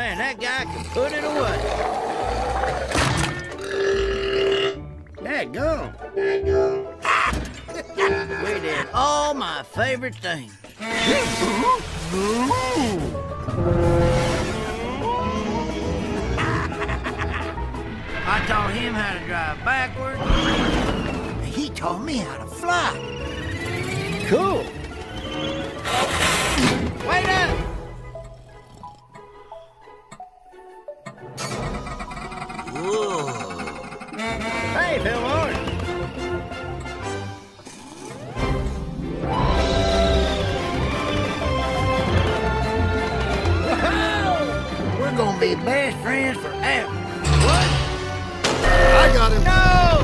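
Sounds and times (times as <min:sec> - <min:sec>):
background music: 0:00.0 - 0:50.0
cartoon burp: 0:02.2 - 0:04.8, 0:32.1 - 0:34.6.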